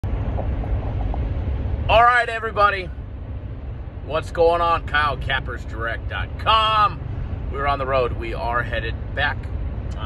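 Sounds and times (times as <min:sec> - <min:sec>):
car cabin road noise: 0:00.0 - 0:10.0
man speaking: 0:01.9 - 0:02.9, 0:04.1 - 0:10.0.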